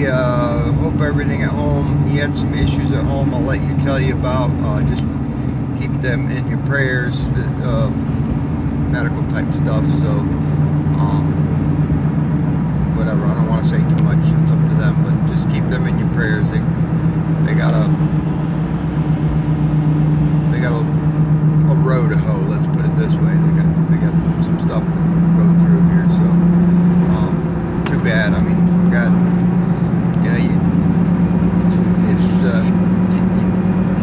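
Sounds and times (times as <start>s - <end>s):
truck engine and road noise: 0.0s - 34.0s.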